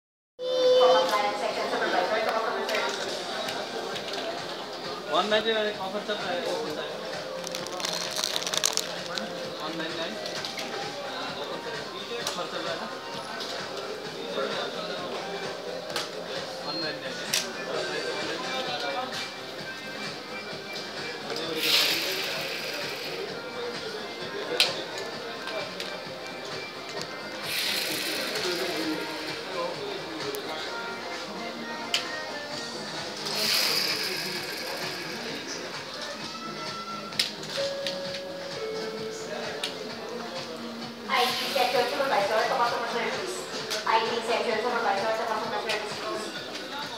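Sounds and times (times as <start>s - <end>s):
background music: 0.4s - 46.9s
short bursts of hissing: 27.4s - 29.1s
indistinct voices: 32.6s - 36.2s.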